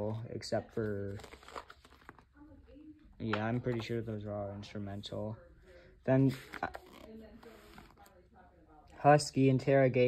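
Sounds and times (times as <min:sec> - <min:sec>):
glossy book page rustling: 0:00.7 - 0:02.4, 0:06.3 - 0:08.2.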